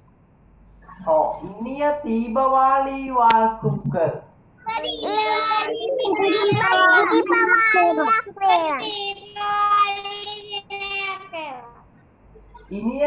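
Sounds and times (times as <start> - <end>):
child singing: 4.7 - 11.8.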